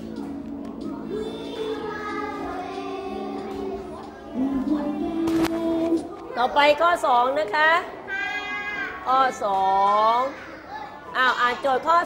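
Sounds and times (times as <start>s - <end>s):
children calling out together: 7.9s - 9.1s, 10.0s - 11.6s.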